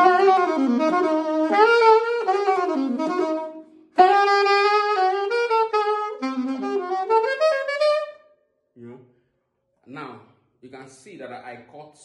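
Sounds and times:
saxophone playing jazz: 0.0 - 8.4.

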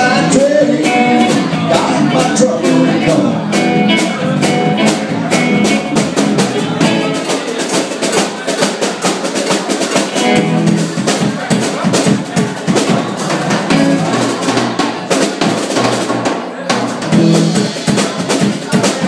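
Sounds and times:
electric guitar: 0.0 - 7.4, 10.1 - 11.3, 13.5 - 14.9, 17.0 - 18.5
drum kit playing: 0.0 - 19.0.

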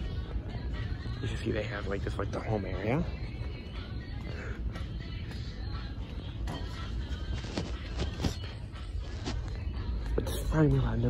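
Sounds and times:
faint background music: 0.0 - 11.0
low rumble of store interior: 0.0 - 11.0.

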